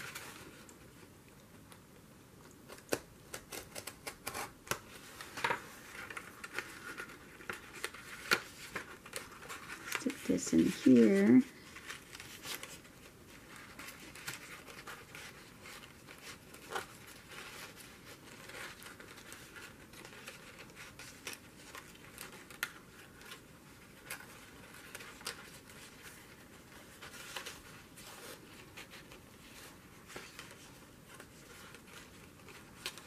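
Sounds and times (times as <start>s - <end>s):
paper rustling and scratching: 0.0s - 1.1s, 2.6s - 33.0s.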